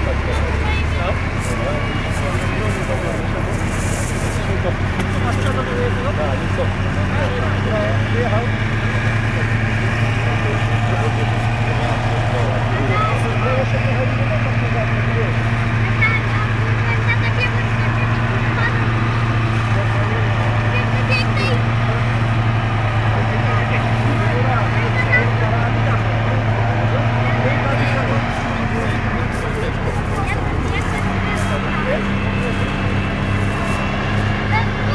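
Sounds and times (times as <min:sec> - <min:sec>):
tracked vehicle engine droning: 0:00.0 - 0:34.9.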